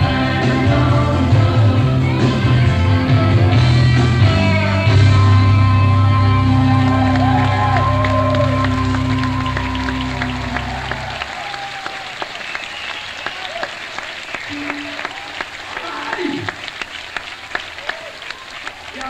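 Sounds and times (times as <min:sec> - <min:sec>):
rock band chord ringing out: 0:00.0 - 0:11.1
audience applauding and cheering: 0:05.7 - 0:19.0.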